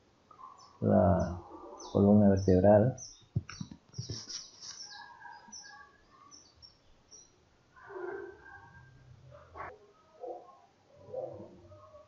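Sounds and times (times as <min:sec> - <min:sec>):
faint bird chirping: 0:00.0 - 0:12.0.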